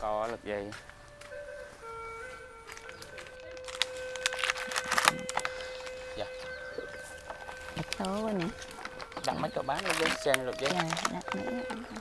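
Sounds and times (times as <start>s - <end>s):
simple electronic melody: 0.0s - 12.0s.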